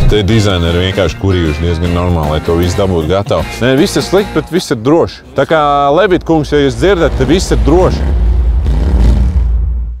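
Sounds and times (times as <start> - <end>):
deep bass rumble: 6.1 - 10.0.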